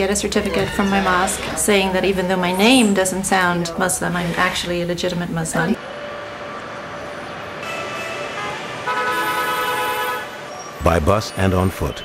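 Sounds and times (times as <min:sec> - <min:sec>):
city traffic: 0:00.0 - 0:12.0
vehicle horns: 0:05.8 - 0:12.0.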